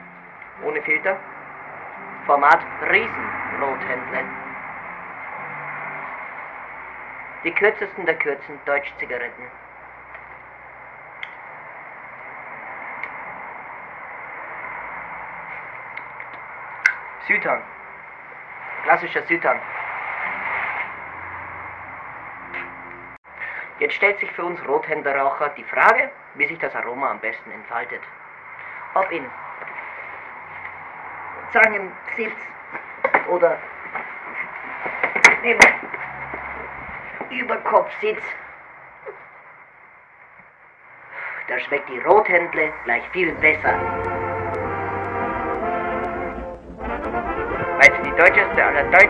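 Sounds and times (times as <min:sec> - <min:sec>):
man's voice-over: 0:00.6 - 0:01.3, 0:02.2 - 0:04.5, 0:07.4 - 0:09.6, 0:17.2 - 0:17.7, 0:18.8 - 0:19.7, 0:41.5 - 0:44.5, 0:47.0 - 0:49.0
steady hiss with high whine: 0:16.5 - 0:22.3.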